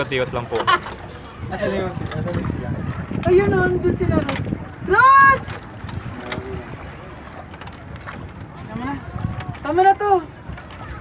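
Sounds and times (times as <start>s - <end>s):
water washing around boat: 0.0s - 11.0s
wind rumble on microphone: 1.2s - 11.0s.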